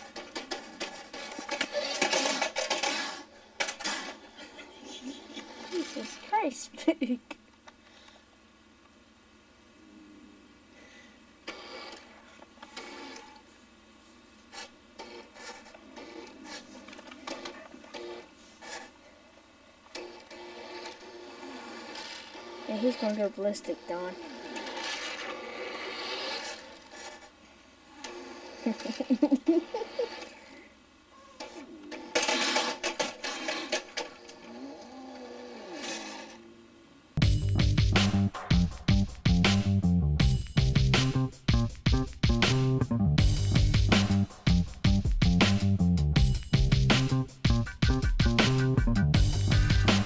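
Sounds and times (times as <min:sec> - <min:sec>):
toy truck motor whirring: 0:00.0 - 0:06.4, 0:11.5 - 0:13.4, 0:14.5 - 0:19.0, 0:19.9 - 0:30.7, 0:31.4 - 0:36.5
soft whine: 0:07.6 - 0:35.1.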